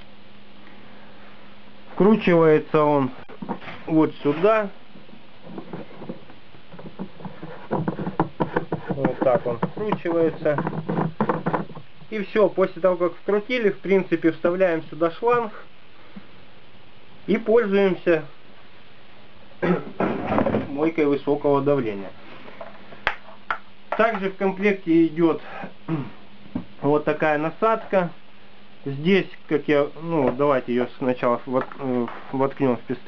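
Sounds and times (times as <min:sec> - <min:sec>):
steady background hiss: 0:00.0 - 0:33.0
plastic threads clicking and scraping: 0:05.4 - 0:11.9.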